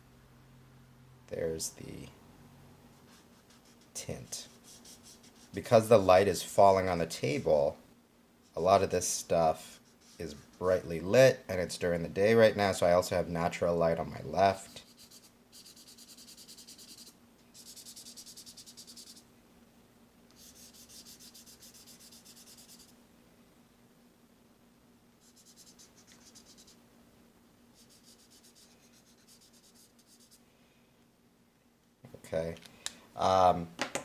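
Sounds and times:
marker scribbling on paper: 0:03.1 - 0:05.7, 0:09.7 - 0:10.7, 0:14.5 - 0:19.2, 0:20.3 - 0:22.9, 0:25.2 - 0:26.8, 0:27.8 - 0:30.4.

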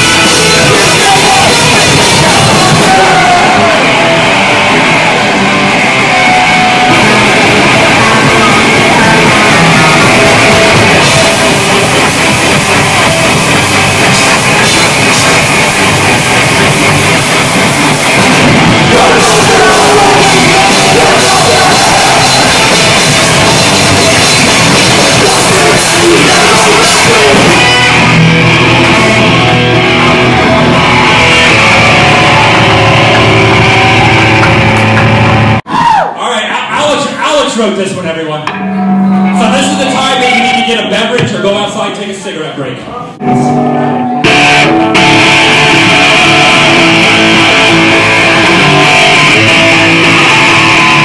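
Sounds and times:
punk rock band playing: 0:00.0 - 0:35.9, 0:37.9 - 0:41.9, 0:43.2 - 0:51.0
singer holding long sung note: 0:18.8 - 0:23.4.

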